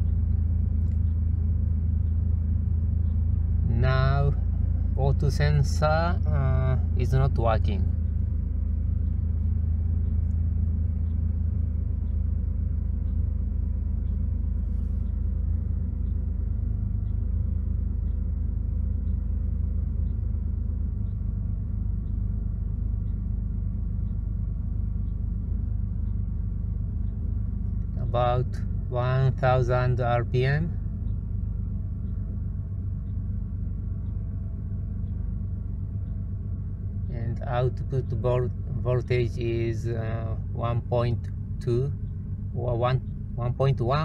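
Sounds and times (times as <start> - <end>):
car engine idling: 0.0 - 44.0.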